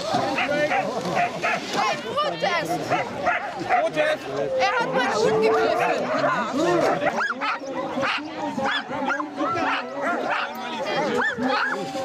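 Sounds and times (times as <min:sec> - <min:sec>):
sled dogs yelping and howling: 0:04.6 - 0:12.0.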